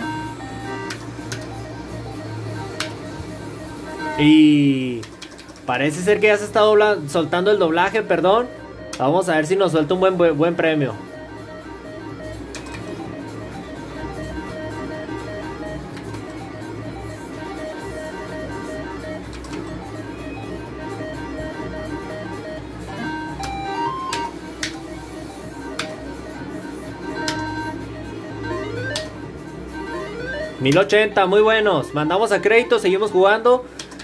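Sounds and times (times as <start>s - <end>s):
plucked-string slot machine tune: 0.0s - 34.0s
stepping beep notes: 19.8s - 33.6s.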